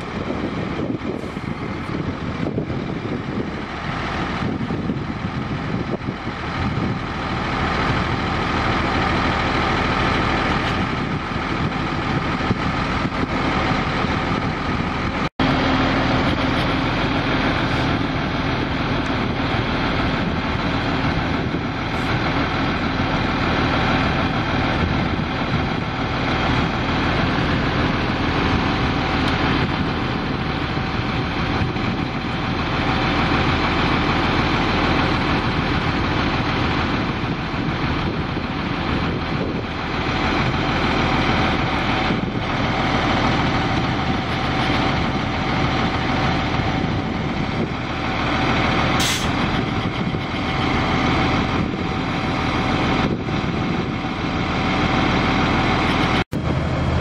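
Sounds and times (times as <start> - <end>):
diesel truck engine running: 0.0 - 57.0
hydraulic whine: 0.0 - 57.0.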